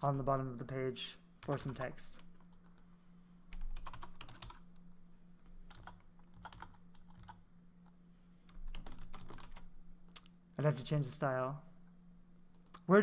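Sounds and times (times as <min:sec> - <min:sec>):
low steady hum: 0:00.0 - 0:13.0
computer keyboard clicking: 0:03.5 - 0:04.6, 0:05.7 - 0:07.4, 0:08.6 - 0:10.2.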